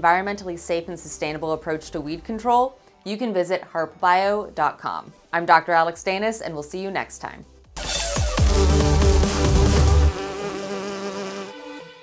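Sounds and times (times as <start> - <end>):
electronic music chord: 7.8 - 12.0
bee buzzing: 9.7 - 12.0.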